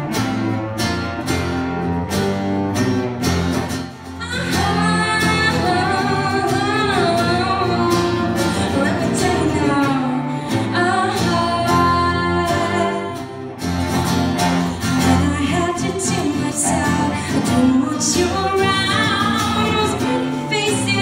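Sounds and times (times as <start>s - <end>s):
acoustic guitar: 0.0s - 21.0s
woman singing: 4.2s - 13.5s, 14.7s - 21.0s.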